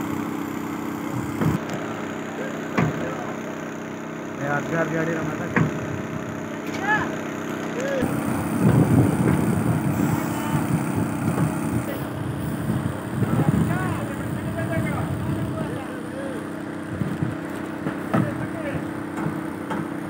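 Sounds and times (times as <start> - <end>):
engine running: 0.0 - 20.0
men calling out: 6.7 - 8.6, 9.8 - 10.9, 11.7 - 16.7.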